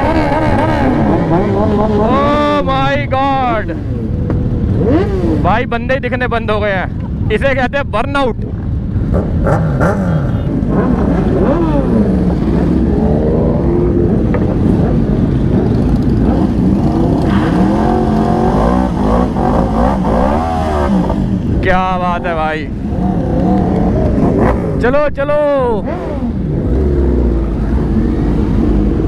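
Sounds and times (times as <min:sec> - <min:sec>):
motorcycle engine revving: 0:00.0 - 0:05.8, 0:08.6 - 0:29.0.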